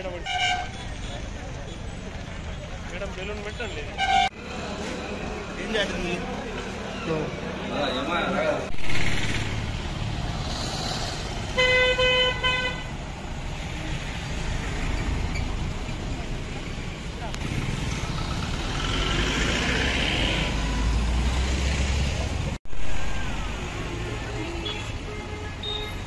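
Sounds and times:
traffic and engine noise: 0.0 - 26.0.

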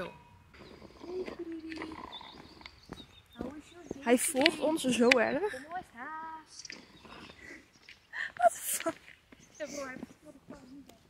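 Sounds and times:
dove cooing: 0.0 - 3.0.

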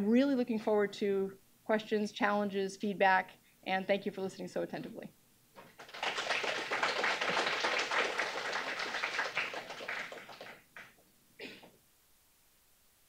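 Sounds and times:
audience applauding: 5.6 - 11.0.

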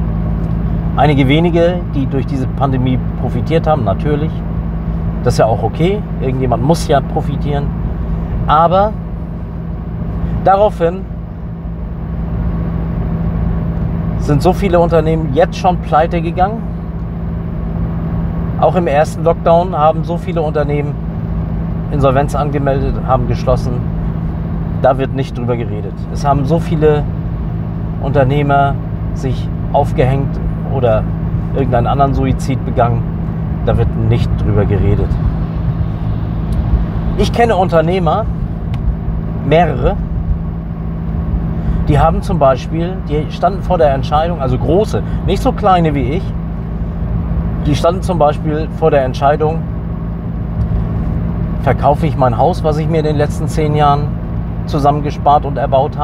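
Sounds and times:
car cabin rumble: 0.0 - 56.0.

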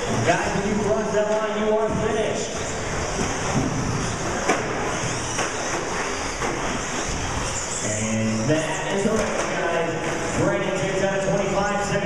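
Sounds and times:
rc truck motor whine: 2.5 - 8.7.

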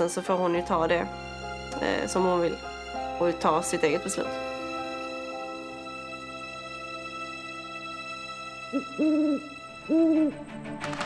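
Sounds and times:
music drone: 4.6 - 11.0
owl hooting: 8.6 - 10.4.

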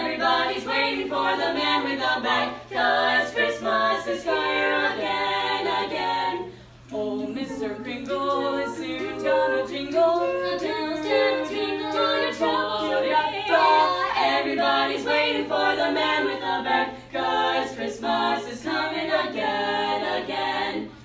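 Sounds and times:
a cappella group singing: 0.0 - 21.0.

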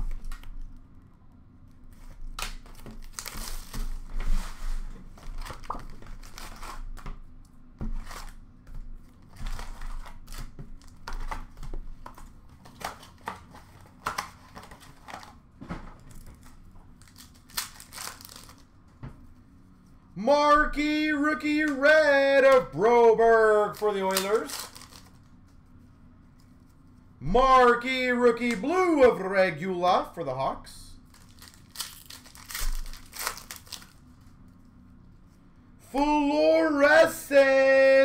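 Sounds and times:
wrapping and cardboard tearing: 1.9 - 7.0, 7.9 - 8.4, 9.1 - 15.4, 16.1 - 18.7, 23.2 - 25.3, 31.0 - 34.4
packaging rustling: 2.0 - 7.0, 9.1 - 18.7, 23.7 - 25.5, 31.0 - 34.8.

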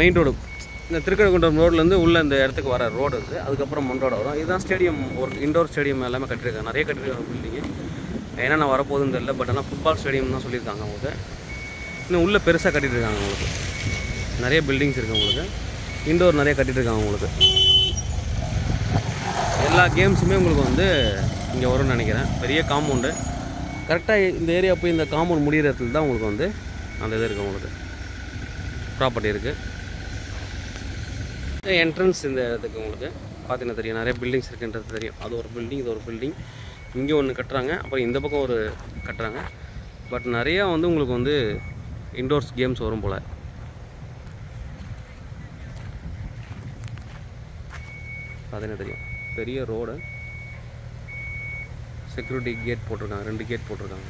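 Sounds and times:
man talking: 0.0 - 7.7, 8.3 - 11.2, 12.0 - 13.5, 14.3 - 17.6, 19.6 - 23.3, 23.9 - 27.8, 29.0 - 29.6, 31.6 - 39.5, 40.1 - 43.3, 48.5 - 50.1, 52.1 - 54.0
reversing alarm beeping: 0.4 - 5.6, 11.5 - 16.4, 22.6 - 27.5, 36.6 - 40.5, 47.7 - 52.8.

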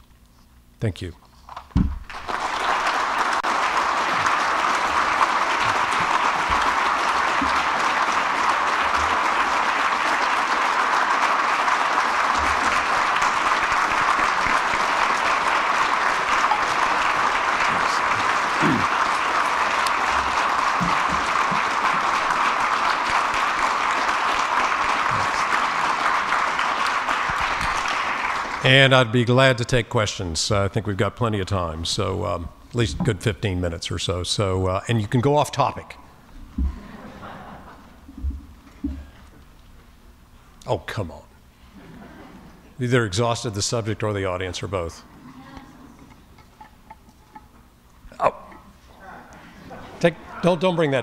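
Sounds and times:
audience applauding: 2.0 - 29.7.

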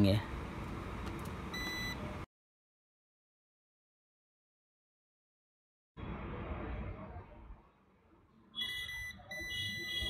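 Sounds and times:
multimeter continuity beep: 1.5 - 2.0, 8.6 - 10.0.

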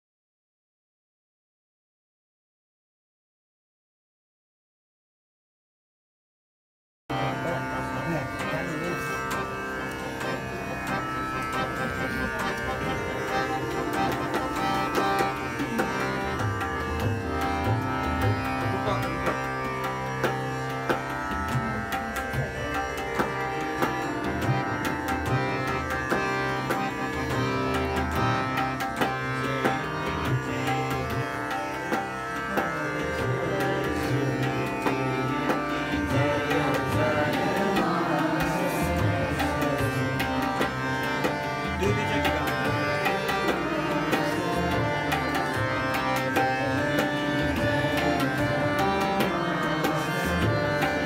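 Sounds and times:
harmonium melody: 7.1 - 51.0
tanpura drone: 7.1 - 51.0.

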